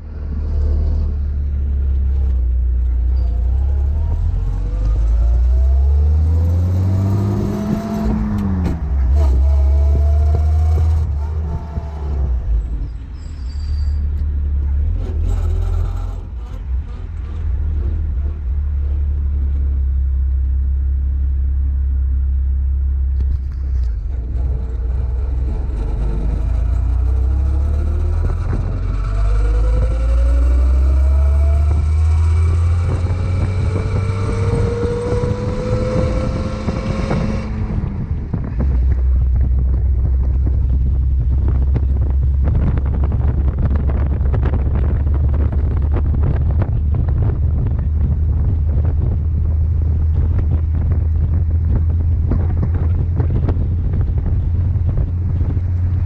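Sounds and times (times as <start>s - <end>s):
wind on microphone: 0.0s - 19.9s, 23.2s - 56.0s
car engine accelerating: 0.0s - 56.0s
heavy low rumble: 0.0s - 56.0s.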